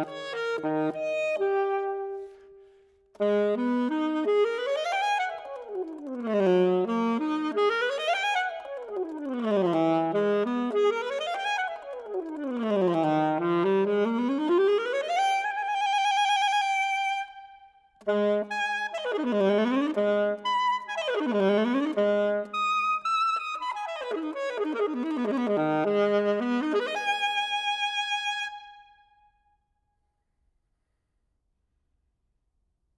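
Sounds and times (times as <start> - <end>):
soprano saxophone: 0.0 - 29.1.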